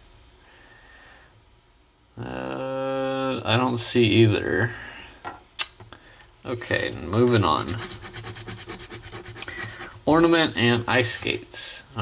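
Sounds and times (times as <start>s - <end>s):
scraping lottery ticket coating: 7.0s - 10.3s.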